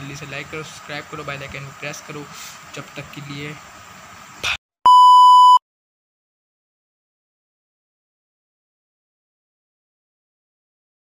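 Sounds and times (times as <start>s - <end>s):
loud electronic beep: 4.9s - 5.6s.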